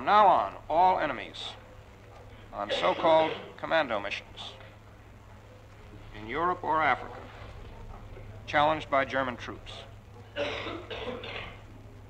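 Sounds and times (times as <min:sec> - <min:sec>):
low recording hum: 0:00.0 - 0:12.0
person clearing throat: 0:02.7 - 0:03.6, 0:10.4 - 0:11.6.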